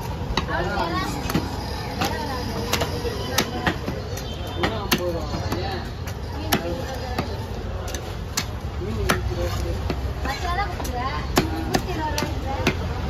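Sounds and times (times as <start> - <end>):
cleaver knocking on chopping block: 6.4 - 10.3.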